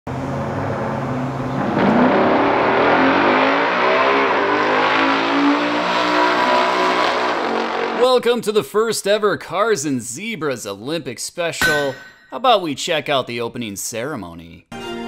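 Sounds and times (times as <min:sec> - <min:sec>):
drag car engines revving: 0:00.1 - 0:08.0.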